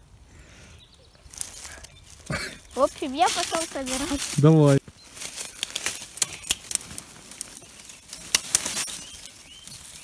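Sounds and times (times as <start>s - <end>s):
footsteps crunching dry leaves: 1.2s - 10.0s
twigs snapping: 5.1s - 10.0s.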